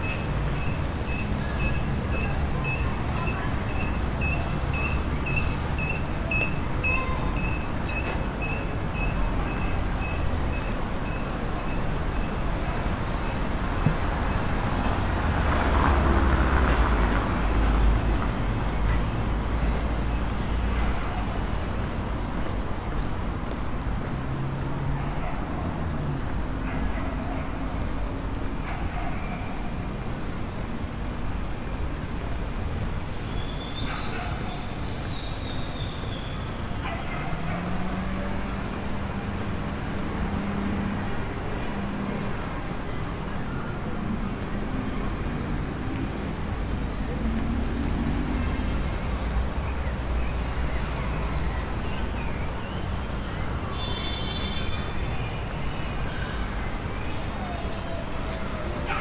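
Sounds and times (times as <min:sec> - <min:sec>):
cars moving along street: 0:00.0 - 0:59.0.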